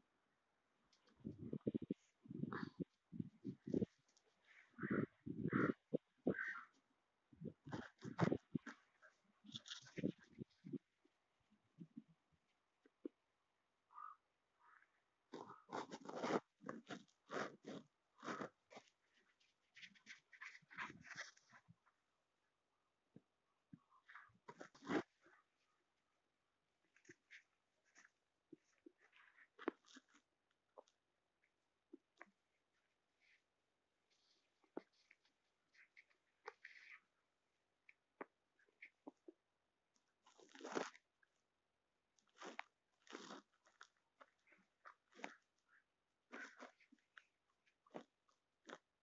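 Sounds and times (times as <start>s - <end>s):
small dog scuffing and snuffling: 18.2s - 21.6s.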